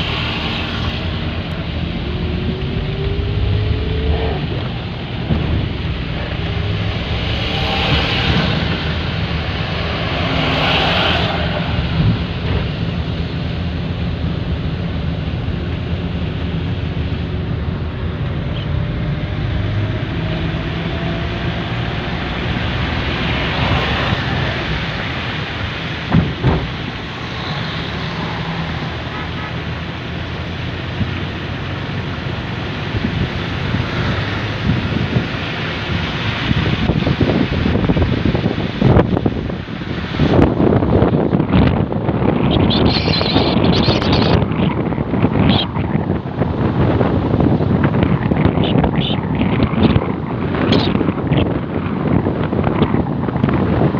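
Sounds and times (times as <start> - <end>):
car engine accelerating: 0.0 - 53.9
tyre noise on wet road: 0.0 - 53.9
wind buffeting microphone: 0.0 - 53.9
thump: 26.1 - 26.7.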